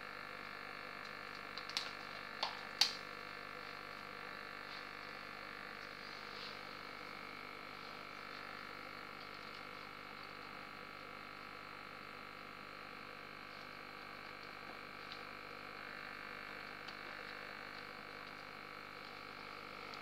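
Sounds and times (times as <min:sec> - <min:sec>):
aquarium filter humming: 0:00.0 - 0:20.0.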